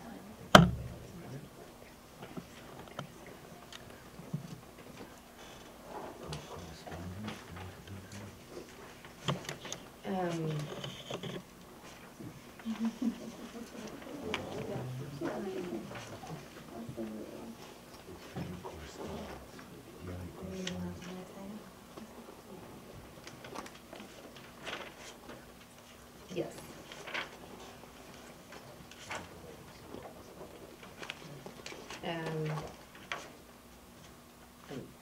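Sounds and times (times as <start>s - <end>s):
murmuring voices: 12.6s - 22.1s
paper rustling: 23.2s - 25.9s, 26.7s - 33.3s.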